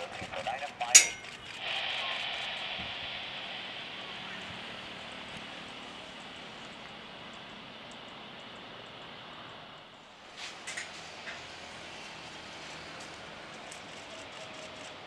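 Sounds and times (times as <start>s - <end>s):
jet engines rushing: 0.0s - 15.0s.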